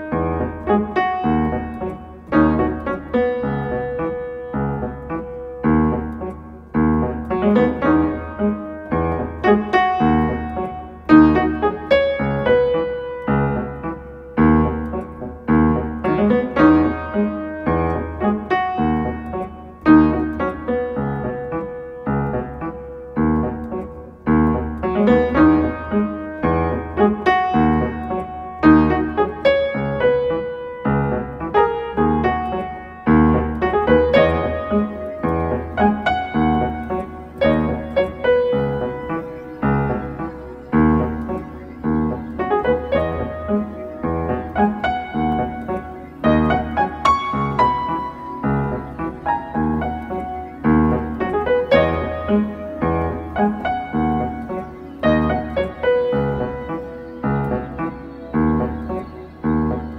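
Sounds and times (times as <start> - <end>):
upright piano melody: 0.0 - 59.9.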